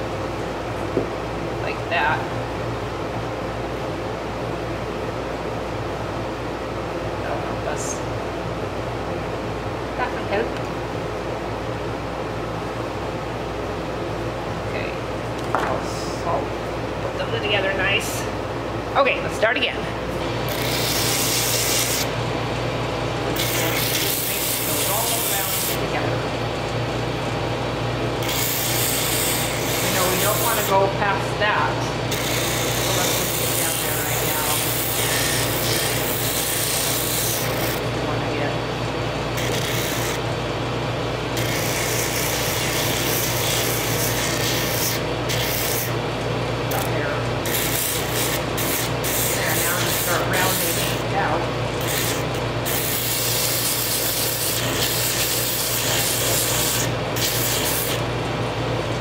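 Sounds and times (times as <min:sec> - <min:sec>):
drum sander motor hum: 0:08.1 - 0:59.0.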